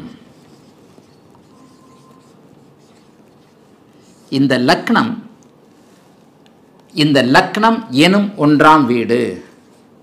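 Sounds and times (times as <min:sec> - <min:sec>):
marker pen writing on whiteboard: 0:00.0 - 0:04.5
marker squeak: 0:00.3 - 0:04.4.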